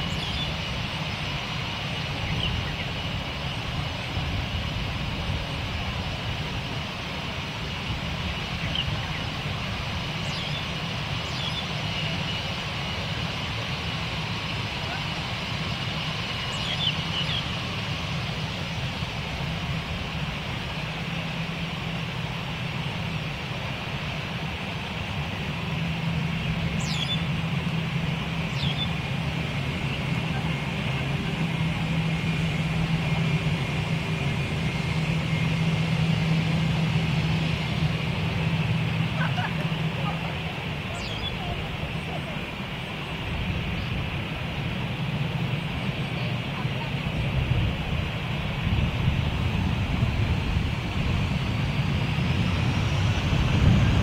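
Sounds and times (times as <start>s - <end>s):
jet engine drone: 0.0s - 54.0s.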